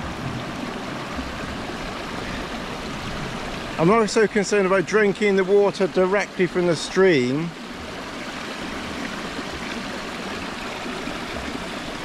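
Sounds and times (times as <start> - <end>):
stream water flowing: 0.0 - 12.0.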